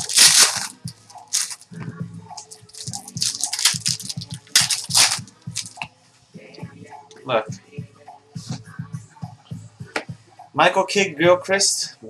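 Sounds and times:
card pack wrappers crinkling: 0.0s - 1.7s, 2.4s - 5.8s
cards being shuffled: 0.0s - 1.7s, 2.4s - 5.9s.

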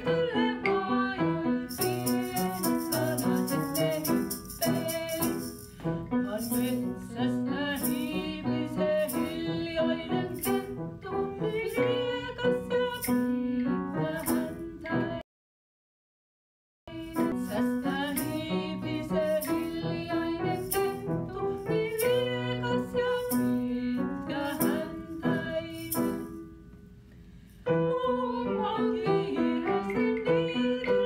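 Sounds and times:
piano accompaniment: 0.0s - 15.2s, 16.9s - 31.0s
women singing a children's song: 0.0s - 15.2s, 16.9s - 26.4s, 27.7s - 31.0s.

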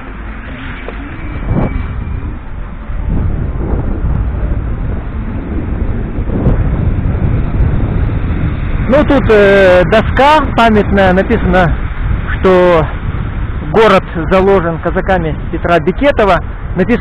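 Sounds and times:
street traffic: 0.0s - 17.0s
wind rumbling on microphone: 0.0s - 17.0s.

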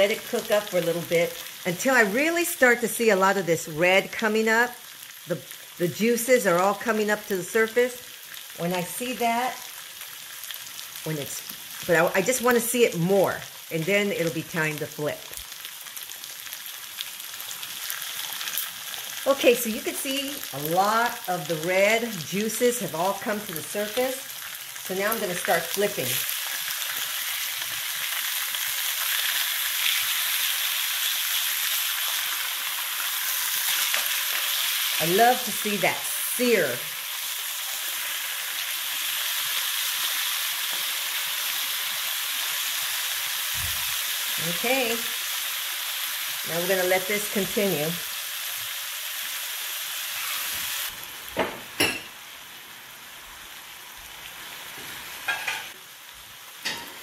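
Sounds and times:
meat sizzling in a skillet: 0.0s - 57.0s.

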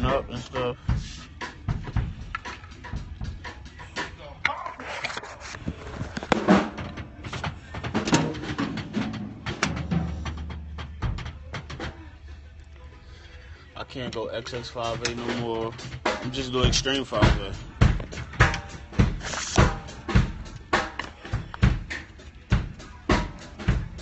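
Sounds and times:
drum kit played: 0.0s - 4.4s, 6.2s - 12.1s, 14.8s - 24.0s.

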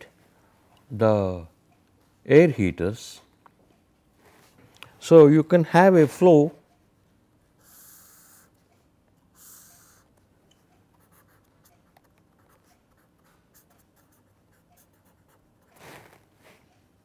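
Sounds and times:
pen scratching on paper: 11.0s - 16.2s.

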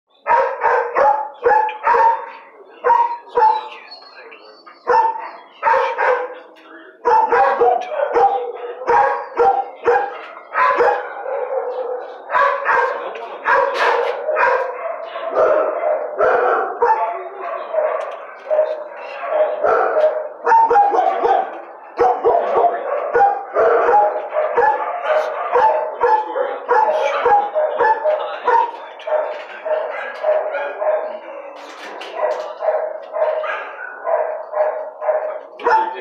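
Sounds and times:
dogs barking: 0.1s - 36.0s.

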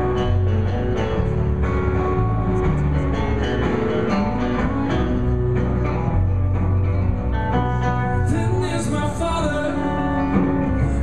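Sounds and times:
acoustic guitars plucked and strummed: 0.0s - 11.0s
deep held bass notes: 0.0s - 11.0s.

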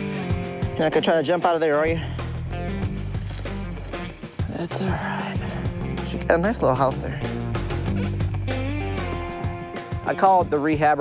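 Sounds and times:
background music with held bass note: 0.0s - 11.0s.

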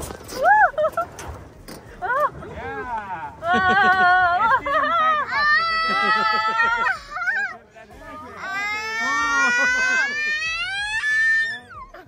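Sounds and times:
people screaming: 3.4s - 7.6s, 8.3s - 12.0s.

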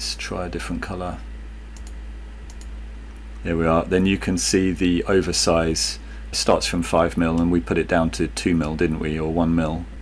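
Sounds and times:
low steady background hum: 0.0s - 10.0s
computer mouse clicks: 1.7s - 3.4s.

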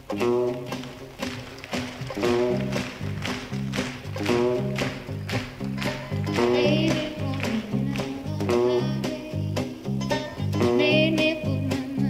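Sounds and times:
country band playing: 0.0s - 12.0s.

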